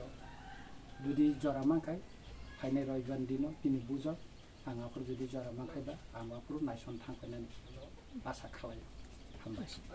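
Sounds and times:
rooster crowing faintly: 0:00.0 - 0:02.8
man talking: 0:01.0 - 0:09.9.

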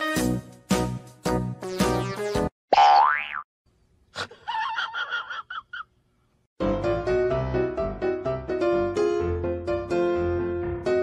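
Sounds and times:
plucked background music: 0:00.0 - 0:02.5.

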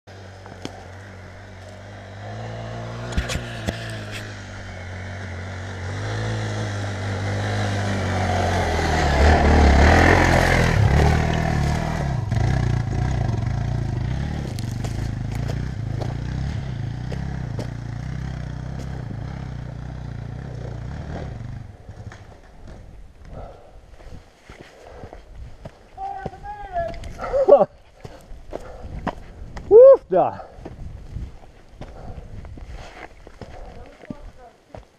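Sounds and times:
dirt bike engine labouring: 0:00.1 - 0:23.6.

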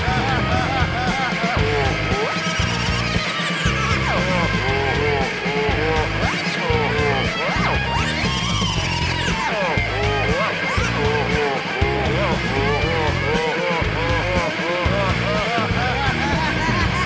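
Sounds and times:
live punk rock band: 0:00.0 - 0:17.0.

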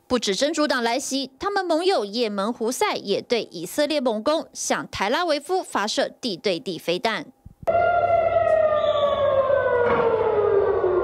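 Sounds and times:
air-raid siren wailing: 0:07.7 - 0:11.0.

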